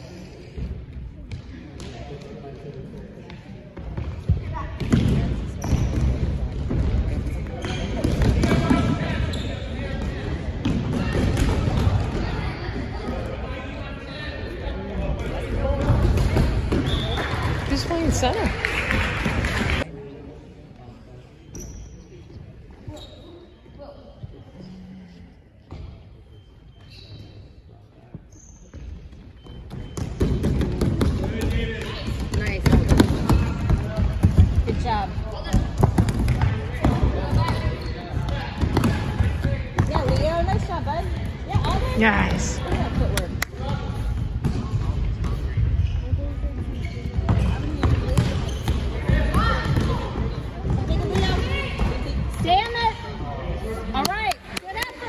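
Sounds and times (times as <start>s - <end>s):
voices of players and onlookers: 0.0s - 55.0s.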